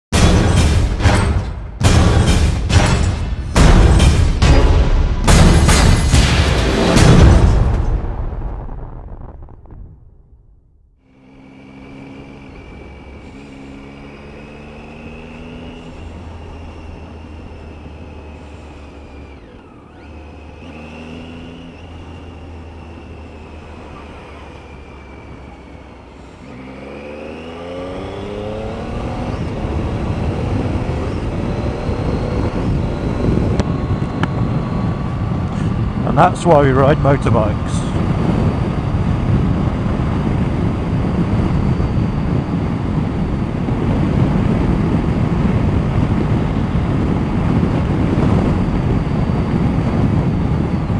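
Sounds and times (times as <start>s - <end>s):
motorcycle engine idling and revving: 0.2s - 8.0s, 10.8s - 50.9s
wind noise on microphone: 28.0s - 50.9s.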